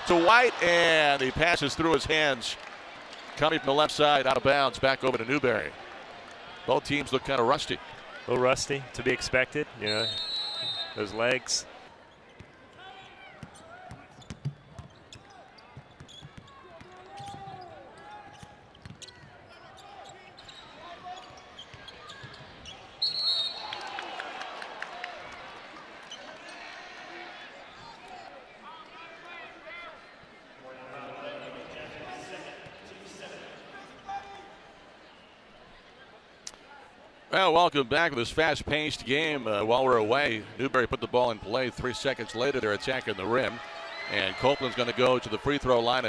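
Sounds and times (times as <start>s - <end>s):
crowd noise: 0.0s - 14.2s, 19.4s - 46.0s
referee's whistle: 9.8s - 11.2s, 23.0s - 23.9s.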